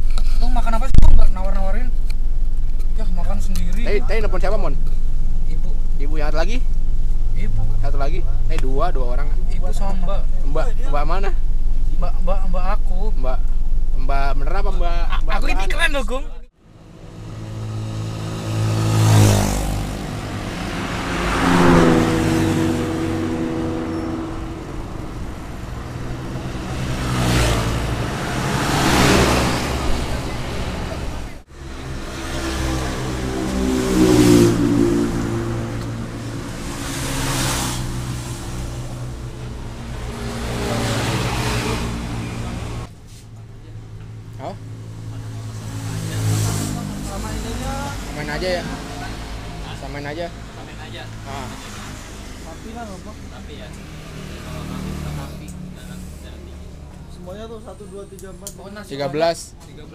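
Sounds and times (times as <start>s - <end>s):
vehicles passing: 0.0s - 59.9s.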